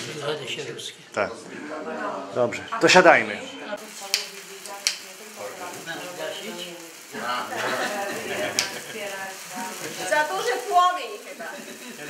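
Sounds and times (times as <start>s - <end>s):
sparklers fizzing: 0.0s - 0.6s, 3.8s - 12.0s
voices talking: 0.0s - 12.0s.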